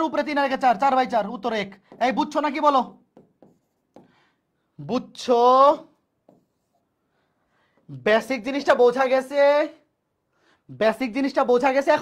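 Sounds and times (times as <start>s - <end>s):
pen scratching: 3.1s - 4.1s, 6.2s - 6.8s.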